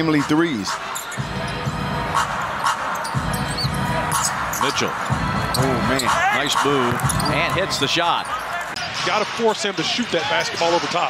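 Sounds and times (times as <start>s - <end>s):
shoe squeaking on floor: 2.2s - 8.8s.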